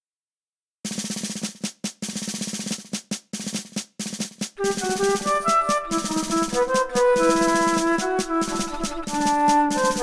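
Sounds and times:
snare drum rolls and strokes: 0.9 - 10.0.

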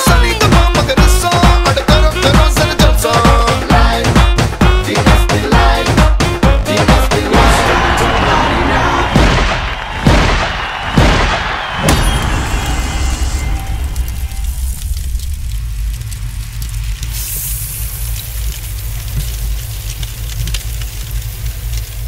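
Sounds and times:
deep booming hits: 5.5 - 16.8
rising hiss: 12.3 - 19.9
sustained low rumble: 12.6 - 21.9.

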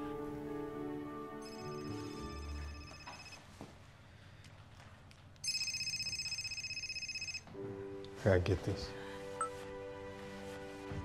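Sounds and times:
phone trilling ring tone: 1.4 - 3.5, 5.4 - 7.5.

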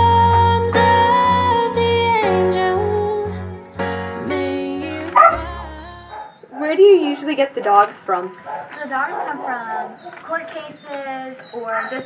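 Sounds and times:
music track: 0.0 - 6.2
dog barking: 5.2 - 5.4, 6.1 - 6.8, 8.2 - 10.7.

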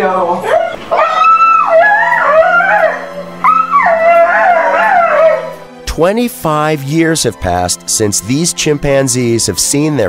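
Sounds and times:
background music with low note: 0.0 - 10.0
dog whining and howling: 0.4 - 5.6.

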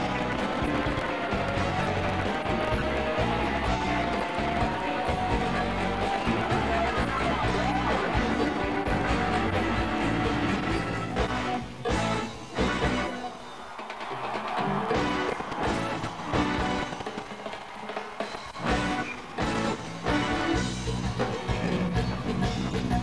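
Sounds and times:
live band playing: 0.0 - 23.0.

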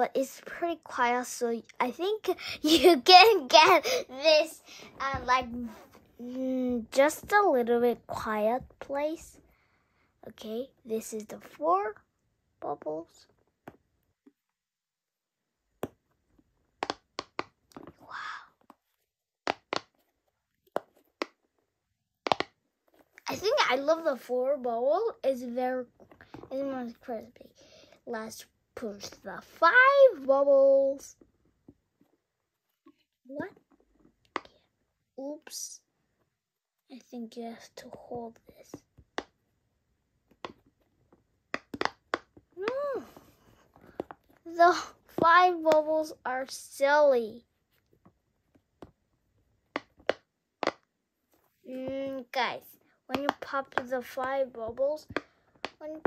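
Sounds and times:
pop-it fidget toy popping: 16.7 - 18.0, 19.4 - 20.1, 22.2 - 22.6, 40.3 - 40.8, 41.4 - 42.8, 49.6 - 50.9, 53.1 - 53.9, 55.0 - 56.0
soft rustle: 51.2 - 51.8.

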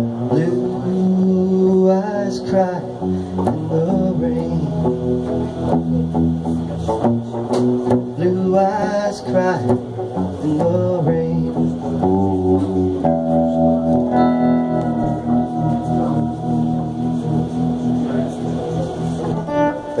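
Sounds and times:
electric guitar strumming chords: 0.0 - 20.0.

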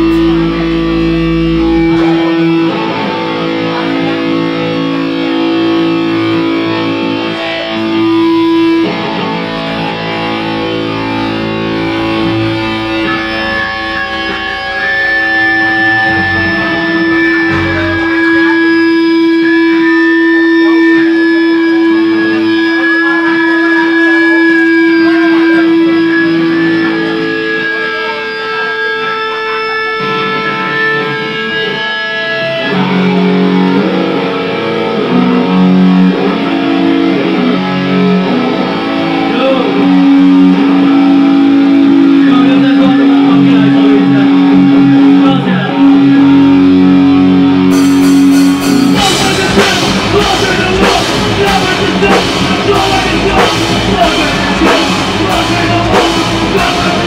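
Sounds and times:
distorted electric guitars: 0.0 - 57.0.

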